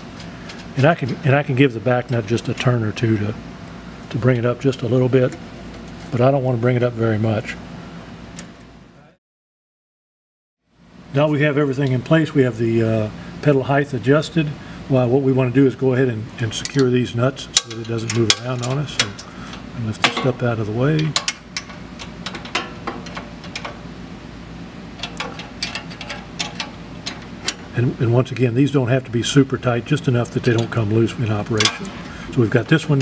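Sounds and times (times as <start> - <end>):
wrench clicking and scraping on nuts: 25.0 - 27.6.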